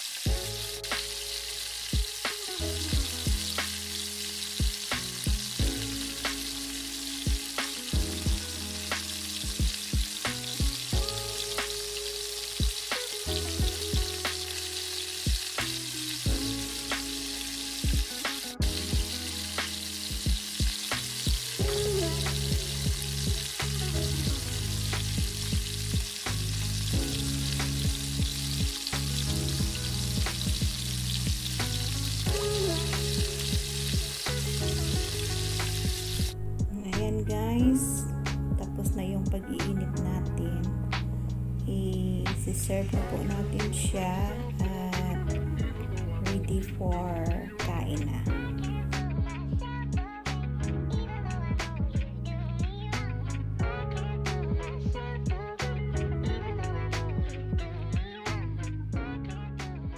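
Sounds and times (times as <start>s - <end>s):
food sizzling in a frying pan: 0.0s - 37.3s
low background music: 0.2s - 59.9s.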